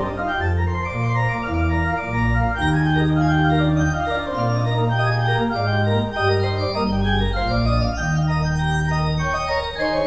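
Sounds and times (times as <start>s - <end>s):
pipe organ playing chords: 0.0s - 10.0s.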